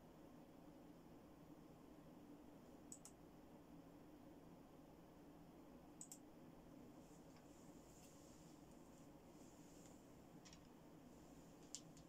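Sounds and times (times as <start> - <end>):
low room hum: 0.0 - 12.0
faint computer clicks: 2.9 - 3.2, 6.0 - 6.3, 9.8 - 10.8.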